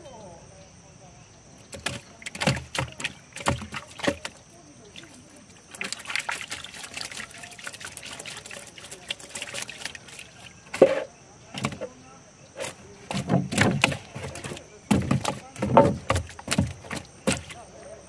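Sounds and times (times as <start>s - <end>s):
fish thumping in a wooden boat: 1.6s - 17.7s
water splashing and trickling: 1.6s - 17.9s.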